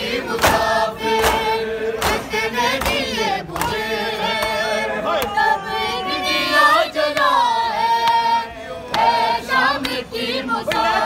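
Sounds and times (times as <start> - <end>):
men singing a lament: 0.0 - 11.0
chest-beating slaps: 1.2 - 3.0.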